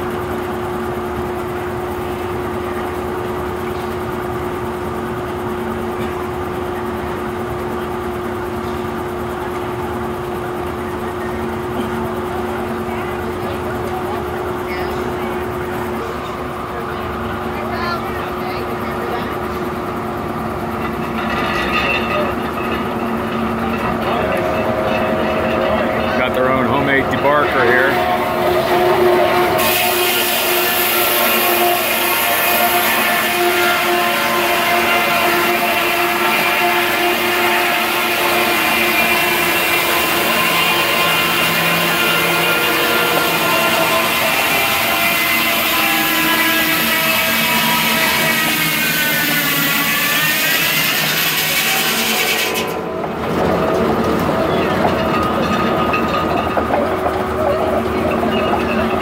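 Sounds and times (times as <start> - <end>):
saw blade ringing whine: 0.0 - 59.0
rasp of saw cutting log: 21.1 - 52.8.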